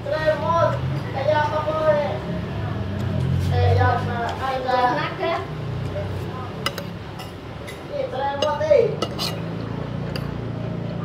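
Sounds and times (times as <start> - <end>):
cutlery clinking on plates: 6.6 - 9.5.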